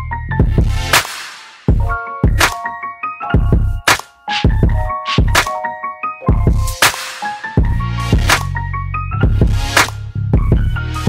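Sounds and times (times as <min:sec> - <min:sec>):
keyboard melody: 0:00.0 - 0:11.0
kick drums and snare beat: 0:00.4 - 0:02.6, 0:03.4 - 0:05.5, 0:06.3 - 0:08.5, 0:09.2 - 0:10.8.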